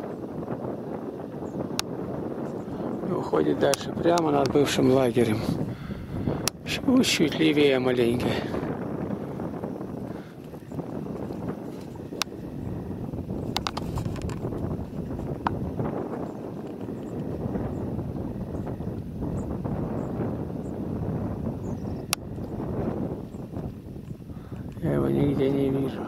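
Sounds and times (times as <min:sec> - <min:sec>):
wind buffeting microphone: 0:00.0 - 0:26.0
camera handling clicks: 0:13.5 - 0:14.4.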